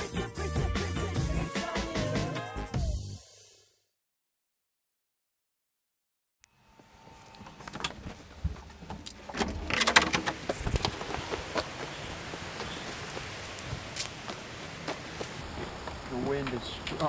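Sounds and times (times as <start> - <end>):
knocks and clatters: 7.7 - 11.1.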